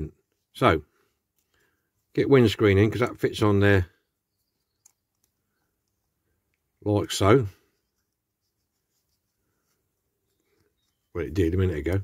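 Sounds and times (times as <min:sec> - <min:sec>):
light plastic clicks: 0:04.5 - 0:06.7.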